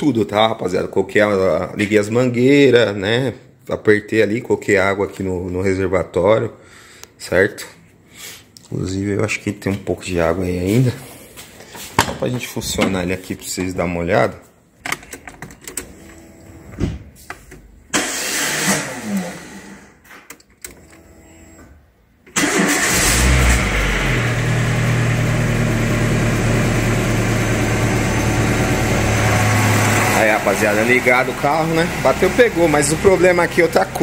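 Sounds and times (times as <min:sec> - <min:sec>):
car engine starting and idling: 0:17.9 - 0:20.0, 0:22.3 - 0:34.0.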